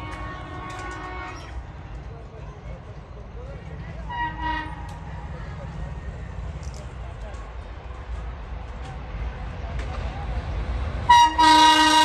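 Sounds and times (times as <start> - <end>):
train horn blast: 0.0 - 1.6, 4.1 - 5.1, 11.1 - 12.0.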